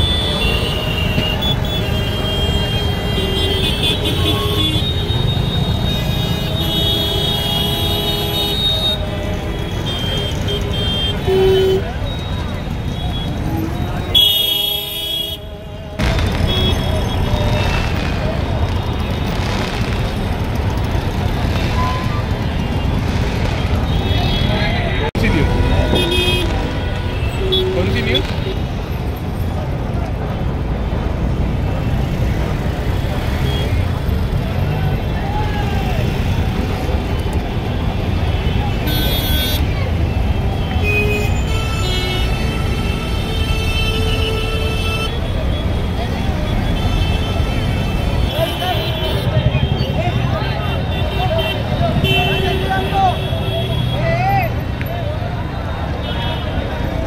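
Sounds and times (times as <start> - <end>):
vehicle horns honking: 0.0 - 15.6, 23.8 - 28.6, 38.2 - 39.8, 50.7 - 54.1
crowd of voices: 8.2 - 43.0, 44.2 - 57.0.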